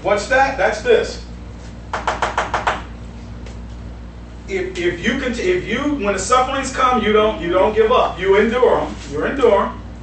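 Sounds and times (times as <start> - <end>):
marker tapping on whiteboard: 1.9 - 2.9.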